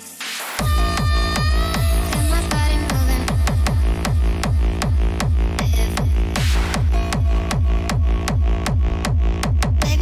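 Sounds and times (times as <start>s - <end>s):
hard techno music: 0.0s - 10.0s
deep bass line: 0.6s - 10.0s
kick drum: 0.6s - 10.0s.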